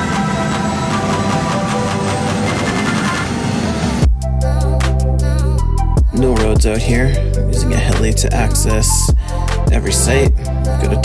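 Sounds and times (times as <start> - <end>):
helicopter cabin rumble: 0.0 - 4.8
background music with held chords: 0.0 - 11.0.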